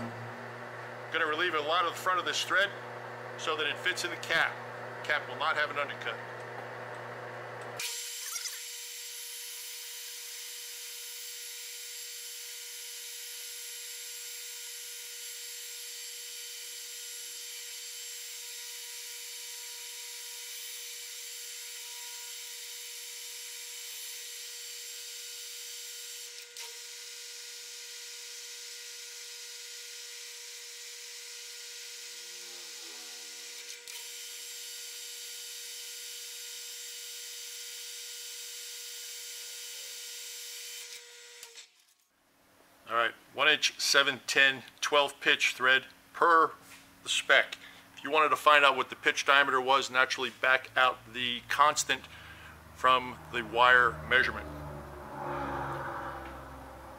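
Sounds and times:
metal lathe whining: 0:31.8 - 0:34.4.

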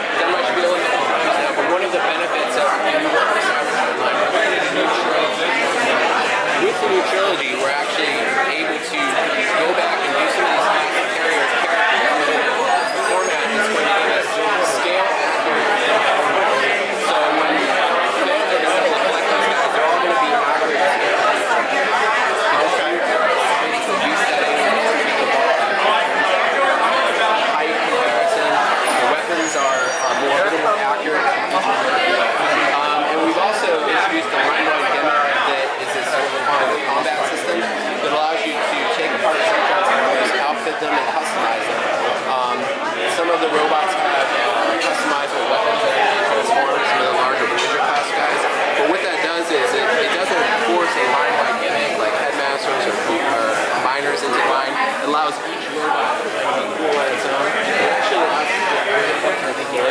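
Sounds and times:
chatter of many people: 0:00.0 - 0:59.9
hubbub of overlapping conversation: 0:00.0 - 0:59.9.

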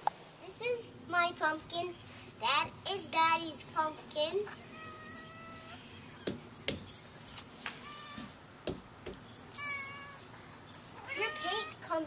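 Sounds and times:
cat mewing: 0:04.7 - 0:05.8, 0:09.6 - 0:10.2, 0:11.0 - 0:11.8.

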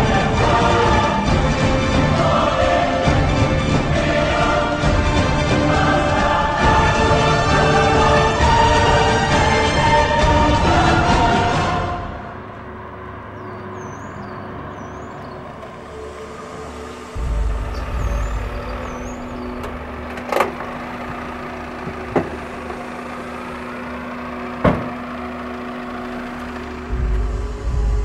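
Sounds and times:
car engine rumble: 0:00.0 - 0:28.0
sharp clunks: 0:21.8 - 0:22.8, 0:24.6 - 0:25.0.

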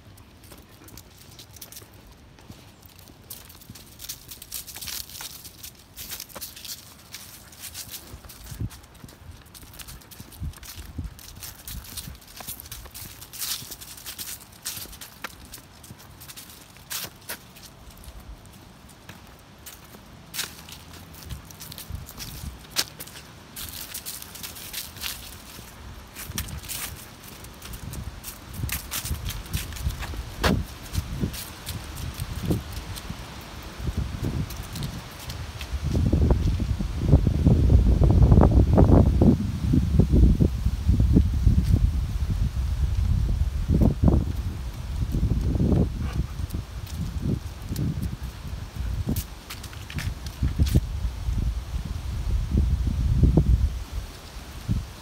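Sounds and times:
footsteps crunching dry leaves: 0:00.0 - 0:55.0.

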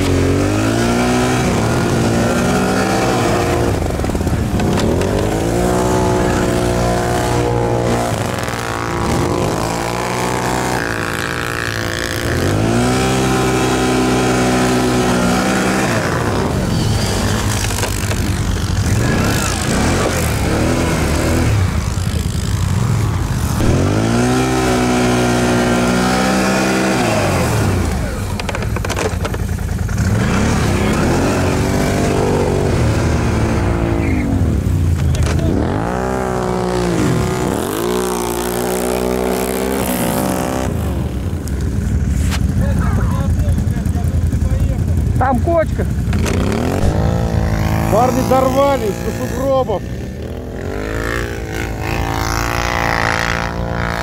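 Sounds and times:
atv engines revving: 0:00.0 - 0:54.0.

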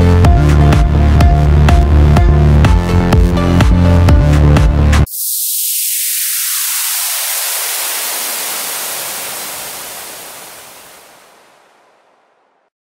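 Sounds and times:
electronic music: 0:00.0 - 0:11.7
white-noise sweep hiss: 0:05.0 - 0:12.7.

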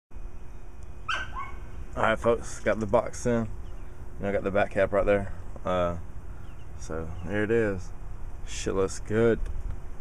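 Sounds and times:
short yelp falling in pitch: 0:01.1 - 0:01.6.

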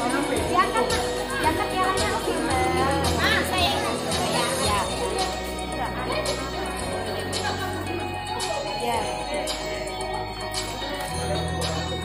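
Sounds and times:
background music: 0:00.0 - 0:12.0
children chattering and calling out: 0:00.0 - 0:12.0.

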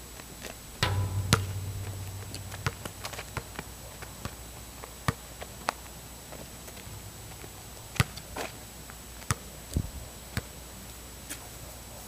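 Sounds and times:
loud thump: 0:00.8 - 0:04.5
low rumble: 0:00.8 - 0:04.8.

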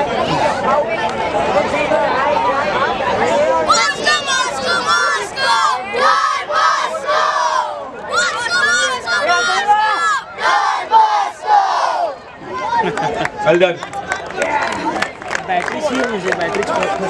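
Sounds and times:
children shouting team cheer: 0:03.7 - 0:12.2.

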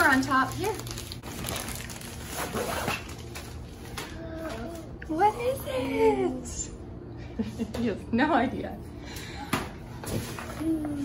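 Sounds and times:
packaging rustling: 0:00.0 - 0:03.9
zipper being pulled open: 0:02.3 - 0:03.1.

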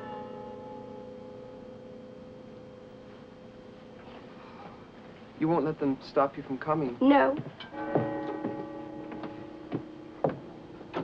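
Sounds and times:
soft knocks: 0:07.3 - 0:11.0
ringing chord: 0:07.6 - 0:11.0.

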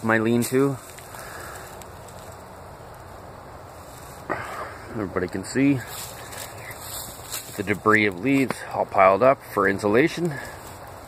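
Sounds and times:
soft outdoor hiss: 0:00.0 - 0:11.0.

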